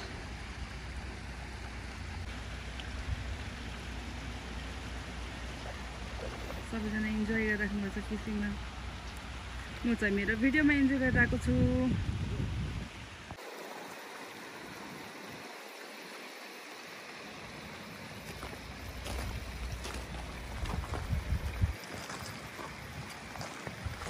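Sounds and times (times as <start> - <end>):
water hiss: 0.0 - 24.0
wind rumble on microphone: 5.5 - 13.4, 19.0 - 24.0.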